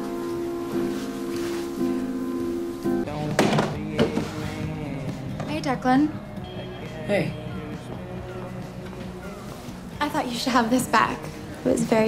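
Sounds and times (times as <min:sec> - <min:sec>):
soft background music: 0:00.0 - 0:12.0
jugs set down on wooden counter: 0:03.3 - 0:04.3.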